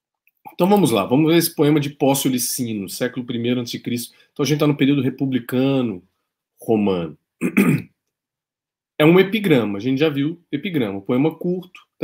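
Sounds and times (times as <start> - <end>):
man speaking: 0.5 - 7.8, 9.0 - 12.0
man clearing throat: 7.4 - 8.0.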